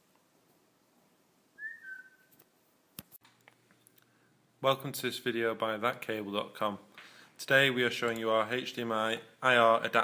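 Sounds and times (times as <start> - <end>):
short whistle-like tone: 1.6 - 2.4.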